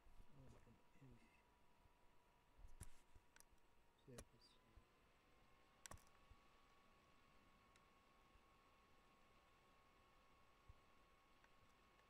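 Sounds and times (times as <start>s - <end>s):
faint high hum: 0.0s - 12.0s
faint sharp clicks: 5.8s - 6.2s.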